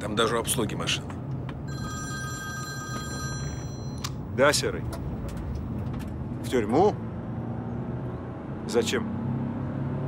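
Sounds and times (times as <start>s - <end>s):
phone ringtone: 1.7s - 4.2s.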